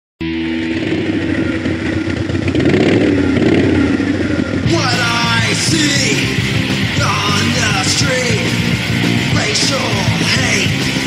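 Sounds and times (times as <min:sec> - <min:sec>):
distorted electric guitar chord: 0:00.2 - 0:11.0
drums and cymbals crashing: 0:00.2 - 0:11.0.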